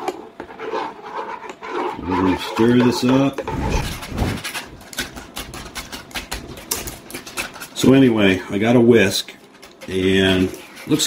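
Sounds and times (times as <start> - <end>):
whisk clicking against pot: 4.4 - 7.9.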